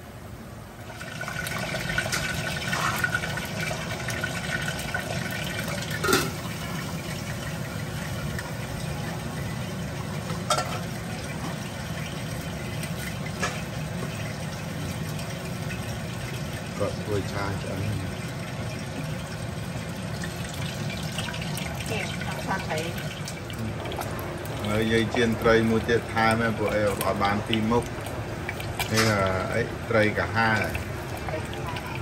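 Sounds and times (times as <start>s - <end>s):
running water rushing: 0.8s - 32.0s.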